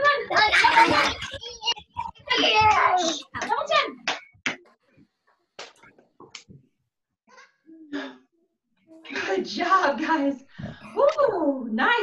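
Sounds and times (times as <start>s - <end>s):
children's voice fragments: 0.0s - 4.2s.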